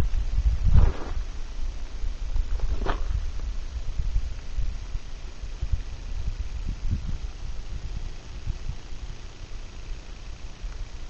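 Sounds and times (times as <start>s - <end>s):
wind buffeting microphone: 0.0s - 9.1s.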